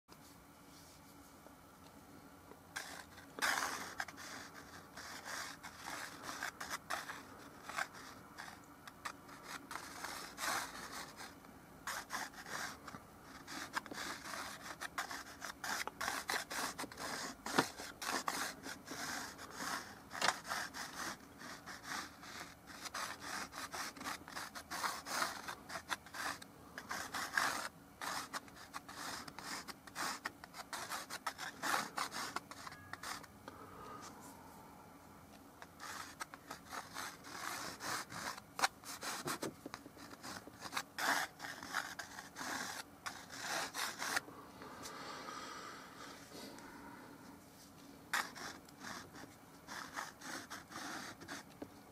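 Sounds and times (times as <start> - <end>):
chalk scratching on canvas: 2.8 - 33.3, 35.6 - 44.2, 48.1 - 51.5.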